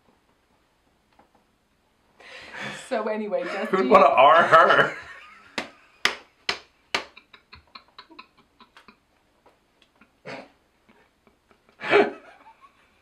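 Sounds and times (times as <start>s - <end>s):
sharp taps: 5.6s - 8.9s.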